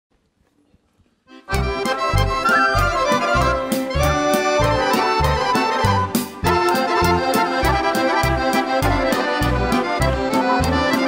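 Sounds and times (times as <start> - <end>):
accordion melody: 1.3 - 11.0
bass notes: 1.4 - 11.0.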